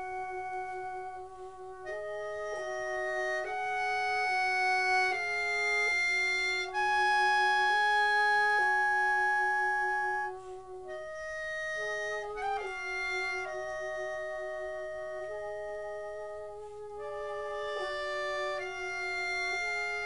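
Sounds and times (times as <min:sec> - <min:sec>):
slow clarinet melody: 0:00.0 - 0:20.0.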